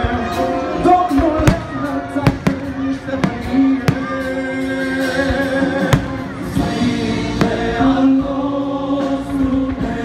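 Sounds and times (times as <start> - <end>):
loud music with held notes: 0.0 - 10.0
fireworks bursting: 1.4 - 8.2.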